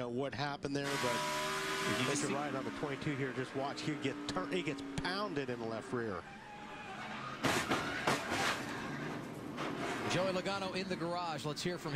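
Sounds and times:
race car running at speed: 0.7 - 11.9
loud car impact: 7.3 - 10.1.

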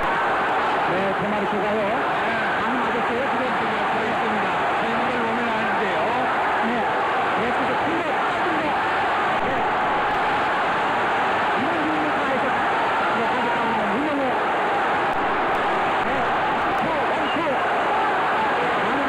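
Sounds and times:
arena crowd shouting and cheering: 0.0 - 19.0.

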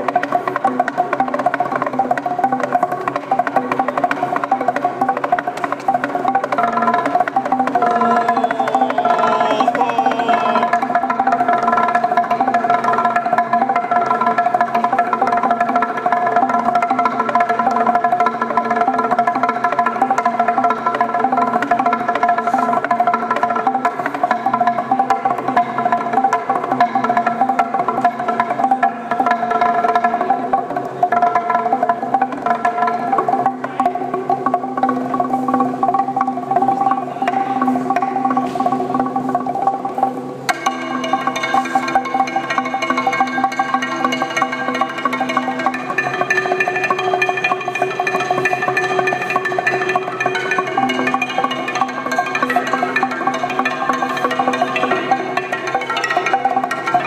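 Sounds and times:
wooden planks struck with sticks: 0.0 - 57.0.

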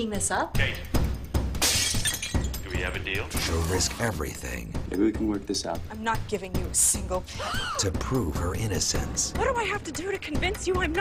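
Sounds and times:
trailer music: 2.7 - 11.0.

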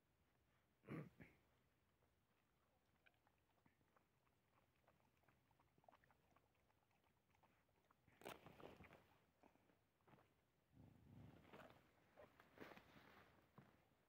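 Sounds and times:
dogs crunching food: 2.6 - 10.3.

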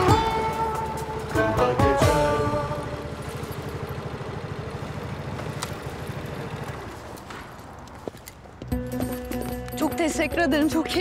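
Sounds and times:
motorcycle engine idling: 0.0 - 9.6
soft background music: 8.7 - 11.0.

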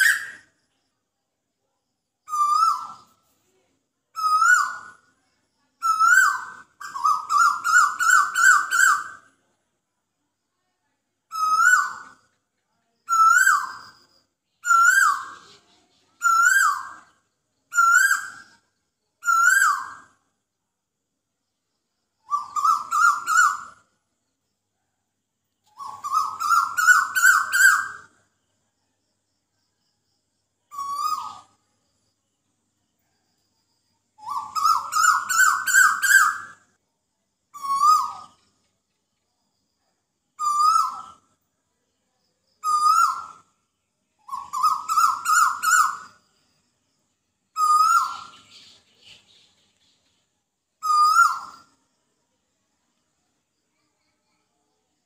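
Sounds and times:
bird calling: 5.8 - 9.2, 14.6 - 18.5, 22.2 - 23.8, 25.7 - 28.1, 34.2 - 36.6, 37.6 - 38.5, 40.4 - 41.2, 44.2 - 46.2, 47.6 - 50.2, 50.8 - 51.8.

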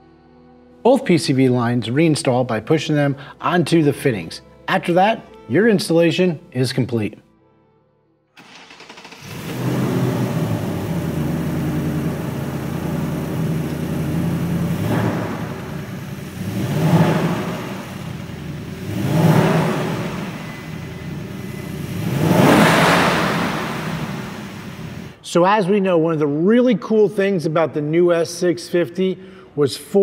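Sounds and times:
car engine revving: 8.4 - 25.2
car engine starting and idling: 8.4 - 25.2.

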